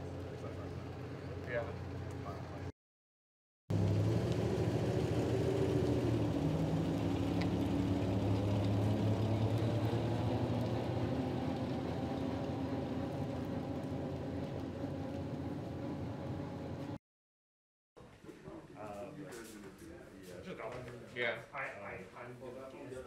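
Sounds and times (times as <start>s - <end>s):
car engine passing: 3.7s - 17.0s.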